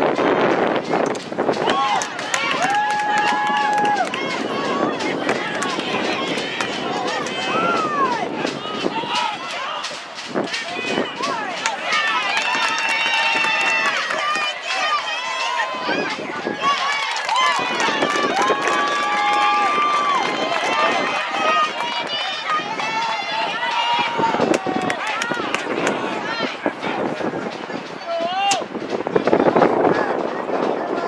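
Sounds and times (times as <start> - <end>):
people shouting: 1.5 - 28.6
sticks clacking: 8.5 - 12.3.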